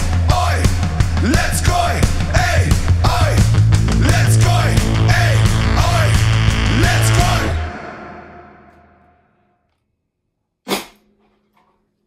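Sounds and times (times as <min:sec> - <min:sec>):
electric guitar and drum chord: 0:00.0 - 0:09.0.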